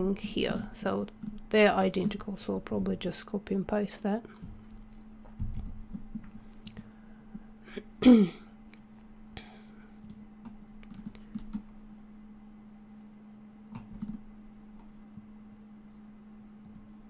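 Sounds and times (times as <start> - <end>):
steady low hum: 0.0 - 17.0
person clearing throat: 7.7 - 8.5
mouse and keyboard clicks: 10.8 - 11.7.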